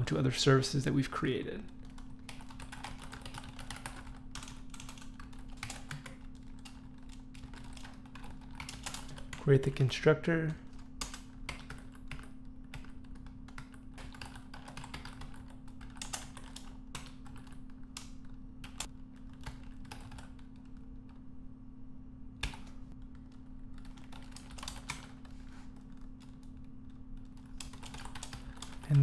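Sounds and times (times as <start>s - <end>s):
typing on computer keyboard: 1.8s - 9.4s, 11.0s - 20.8s, 22.4s - 29.0s.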